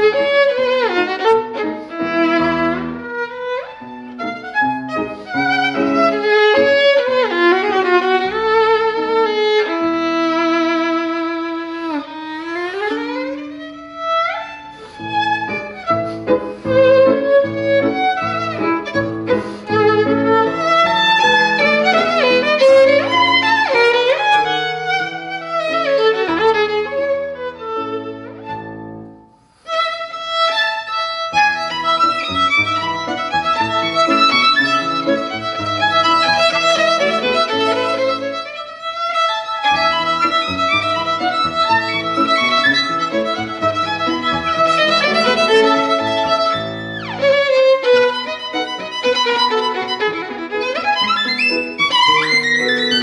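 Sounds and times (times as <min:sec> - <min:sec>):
piano accompaniment: 0:00.0 - 0:53.0
solo violin playing: 0:00.0 - 0:53.0.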